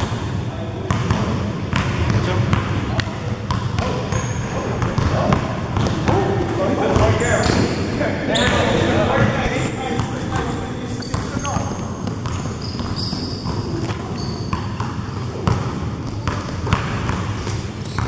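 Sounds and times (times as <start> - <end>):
basketball bouncing on gym floor: 0.0 - 7.7, 10.0 - 18.0
sneakers squeaking on court: 3.5 - 18.0.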